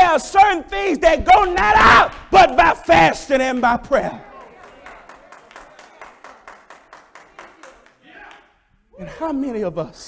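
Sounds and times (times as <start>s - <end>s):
fast hand clapping: 1.4s - 2.3s, 3.4s - 8.5s.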